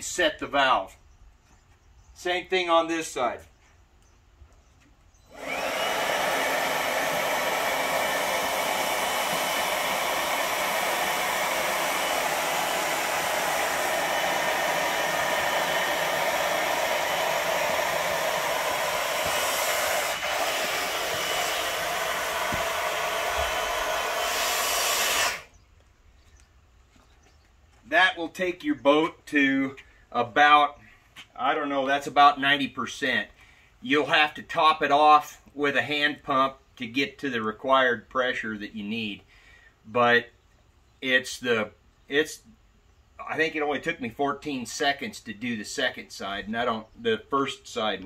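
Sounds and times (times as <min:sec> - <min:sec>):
cordless leaf blower running: 0:05.3 - 0:25.5.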